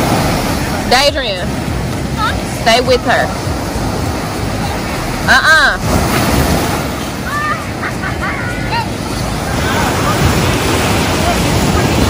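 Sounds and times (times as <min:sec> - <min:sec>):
ocean surf breaking on beach: 0:00.0 - 0:12.0.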